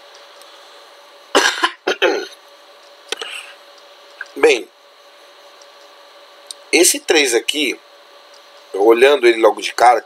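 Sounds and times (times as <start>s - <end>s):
faint steady hum: 0.0s - 10.0s
person coughing: 1.4s - 2.4s.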